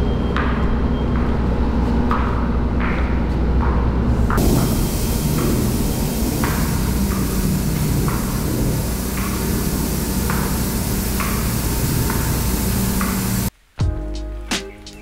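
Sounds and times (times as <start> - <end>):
aerosol spray cans hissing: 4.3 - 13.5
background music: 13.8 - 15.0.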